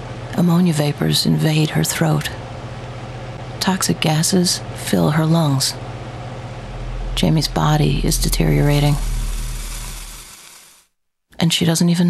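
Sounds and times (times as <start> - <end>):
ominous low rumble: 4.8 - 10.6
hiss: 8.6 - 10.9.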